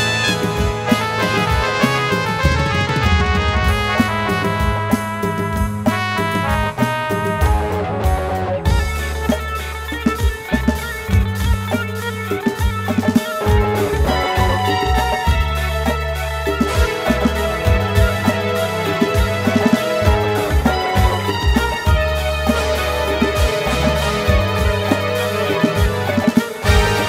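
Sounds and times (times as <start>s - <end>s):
bass guitar: 0.0s - 27.0s
drum kit: 0.0s - 27.0s
electric guitars: 0.0s - 27.0s
keyboards: 0.0s - 27.0s.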